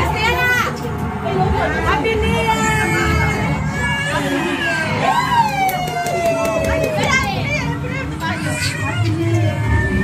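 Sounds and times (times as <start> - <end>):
women and children talking: 0.0 - 5.1, 5.9 - 10.0.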